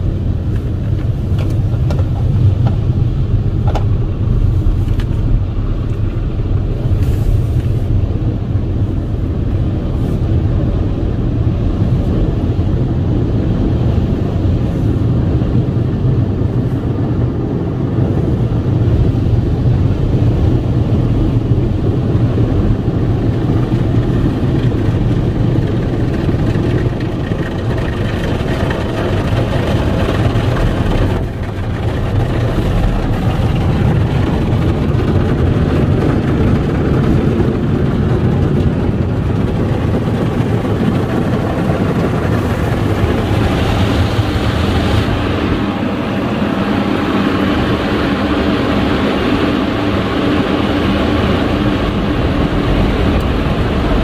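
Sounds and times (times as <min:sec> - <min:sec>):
car wash machinery rumble: 0:00.0 - 0:54.0.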